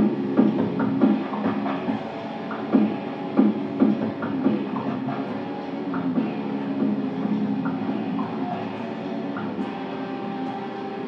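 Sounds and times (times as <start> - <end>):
dubstep backing track: 0.0 - 11.0
electric guitar playing: 0.0 - 11.0.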